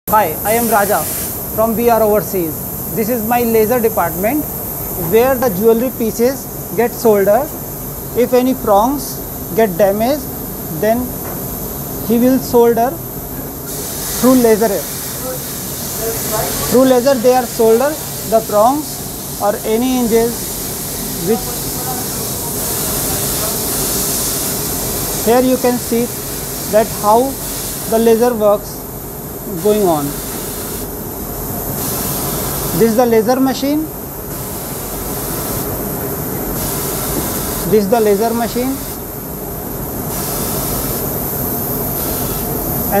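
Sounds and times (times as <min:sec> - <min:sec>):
laser welding machine hissing: 0:00.1 - 0:43.0.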